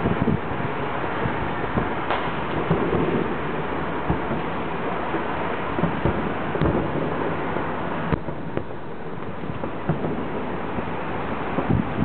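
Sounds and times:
distant fireworks booming: 0.0s - 12.0s
steady hiss: 0.0s - 12.0s.

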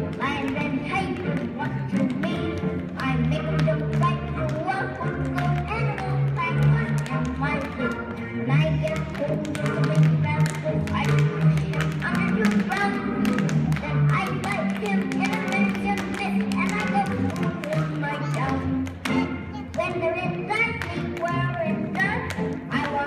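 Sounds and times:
recorded song: 0.0s - 23.0s
tap shoes clicking on wooden stage: 0.0s - 23.0s.

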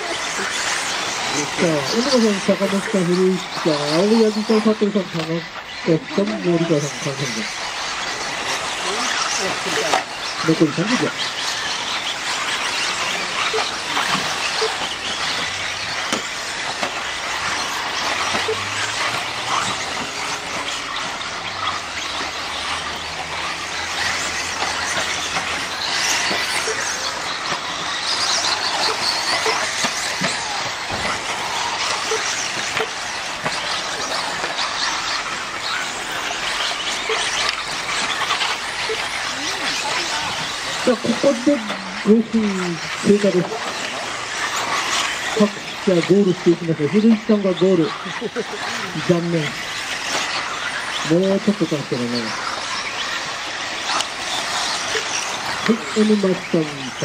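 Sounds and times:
radio-controlled buggies racing: 0.0s - 57.0s
small electric motors whirring: 0.0s - 57.0s.

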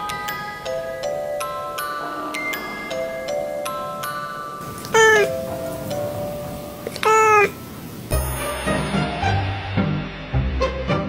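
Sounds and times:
soft background music: 0.0s - 11.0s
cat meowing: 4.6s - 5.5s, 6.8s - 7.6s.

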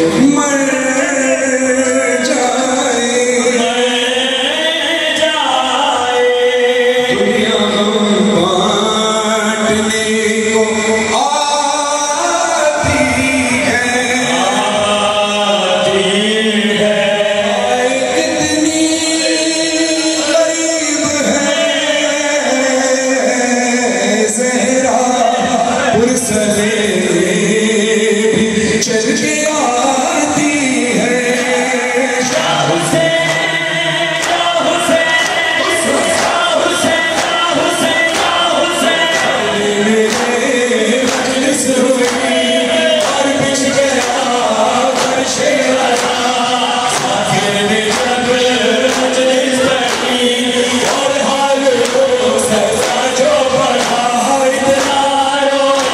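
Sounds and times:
crowd chanting: 0.0s - 28.6s, 29.6s - 55.9s
man singing a mourning lament: 0.0s - 55.9s
hands slapping chests: 31.3s - 32.6s, 33.2s - 55.9s.

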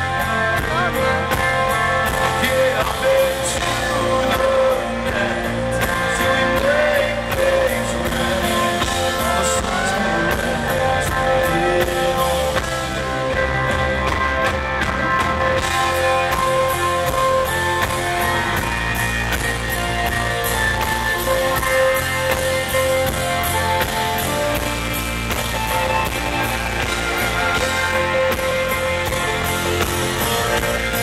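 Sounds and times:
live country-rock band: 0.0s - 31.0s.

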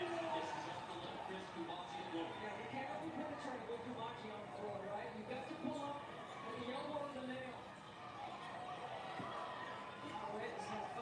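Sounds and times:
commentator talking on tv: 0.0s - 7.7s, 9.9s - 11.0s
arena broadcast background noise: 0.0s - 11.0s.

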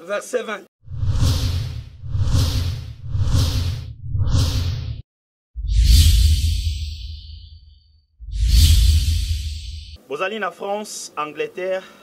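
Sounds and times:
whoosh sound effects: 0.9s - 5.0s, 5.6s - 10.0s.

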